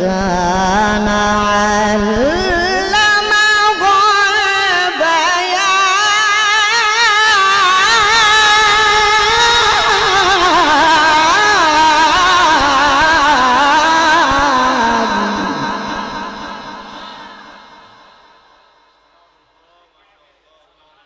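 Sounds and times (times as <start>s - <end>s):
man chanting into a microphone: 0.0s - 17.8s.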